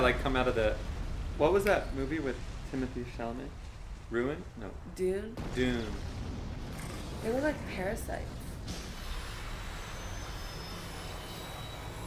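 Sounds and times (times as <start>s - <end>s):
faint hiss: 0.0s - 4.8s
low rumbling noise: 0.0s - 12.0s.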